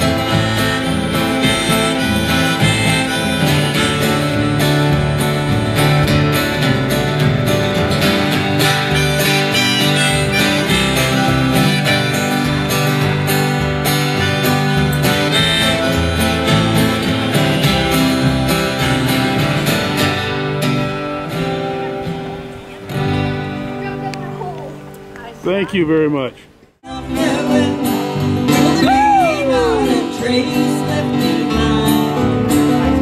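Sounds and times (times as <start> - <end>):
plucked upright bass: 0.0 - 24.4, 26.9 - 33.0
acoustic guitars: 0.0 - 33.0.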